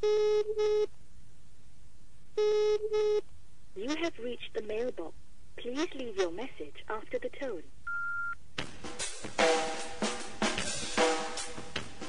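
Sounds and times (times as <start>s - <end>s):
telephone ringback tone: 7.9s - 8.4s.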